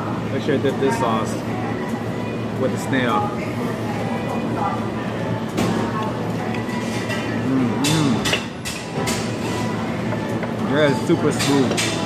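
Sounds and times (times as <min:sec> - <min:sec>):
steady background hum: 0:00.0 - 0:12.0
man humming while chewing: 0:07.4 - 0:08.4.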